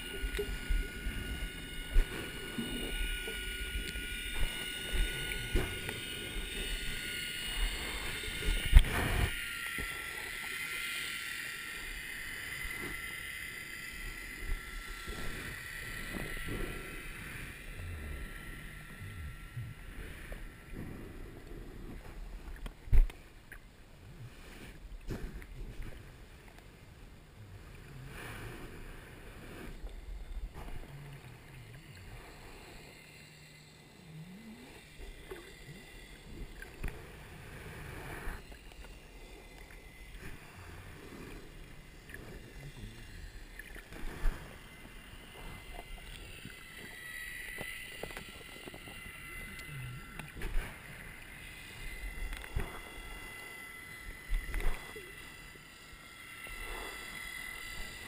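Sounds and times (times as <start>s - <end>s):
muffled underwater rumble: 0.0s - 58.0s.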